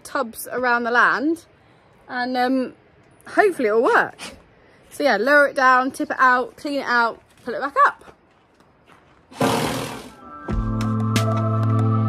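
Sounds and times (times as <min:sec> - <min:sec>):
background music with bass and chords: 0:10.2 - 0:12.0.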